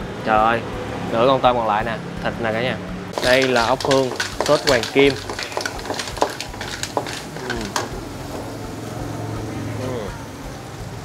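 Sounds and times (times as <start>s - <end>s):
snail shells clacking on wok: 3.2s - 8.6s.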